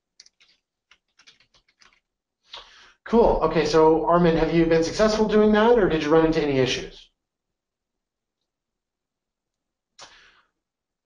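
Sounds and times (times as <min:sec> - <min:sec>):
computer keyboard typing: 0:00.1 - 0:02.1.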